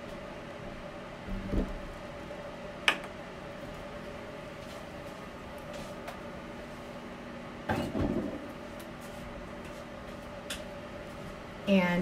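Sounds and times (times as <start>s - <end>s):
steady low hum: 0.0s - 12.0s
objects clunking and rattling: 7.7s - 8.4s.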